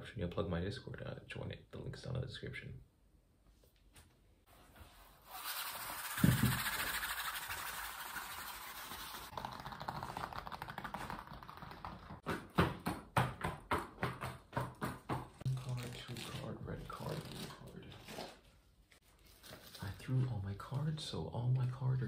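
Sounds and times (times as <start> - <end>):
sharp thump: 6.2 - 6.7.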